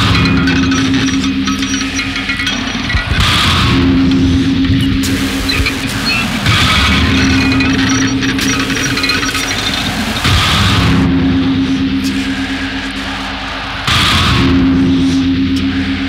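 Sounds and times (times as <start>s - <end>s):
distorted noise music: 0.0s - 16.0s
steady low drone: 0.0s - 16.0s.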